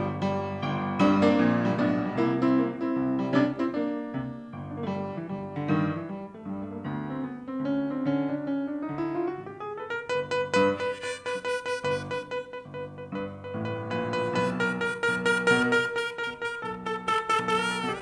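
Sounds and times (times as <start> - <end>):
upright piano blues chords: 0.0 - 18.0
harmonica note sliding up: 10.6 - 12.7, 14.1 - 18.0.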